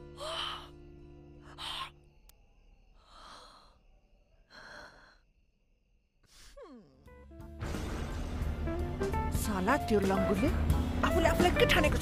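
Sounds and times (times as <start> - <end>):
soft background music: 0.0 - 2.2, 7.0 - 12.0.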